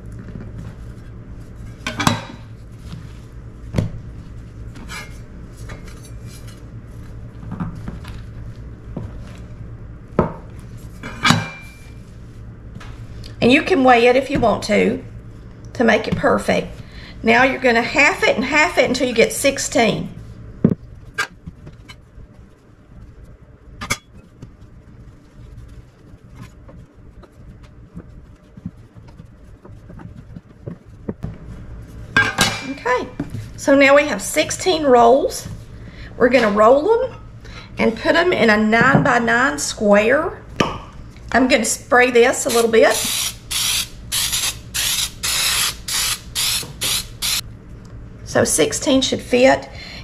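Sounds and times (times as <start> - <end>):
dough handling: 0.0 - 15.4, 18.0 - 35.7
aerosol spray hissing bursts: 42.5 - 47.4.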